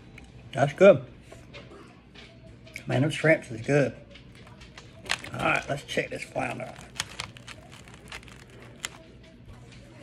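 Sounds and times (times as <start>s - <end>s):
fried crust crackling: 4.9s - 9.2s.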